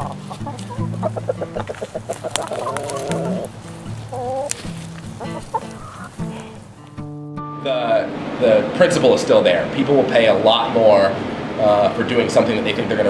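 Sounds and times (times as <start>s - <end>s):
hen warbling call: 0.0s - 6.6s
hens clucking: 0.0s - 7.0s.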